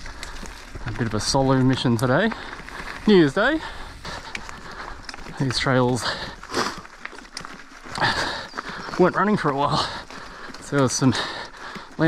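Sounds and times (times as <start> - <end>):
bike tyres rolling on dirt trail: 0.0 - 12.0
soft breath: 2.3 - 5.3, 9.8 - 12.0.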